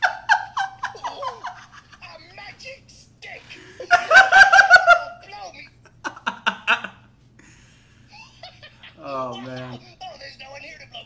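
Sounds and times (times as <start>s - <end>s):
man laughing hard: 0.0s - 2.0s, 3.6s - 5.2s.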